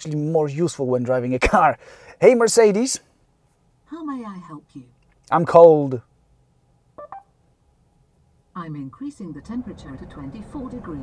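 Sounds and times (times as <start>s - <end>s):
short electronic beeps: 7.0s - 7.3s.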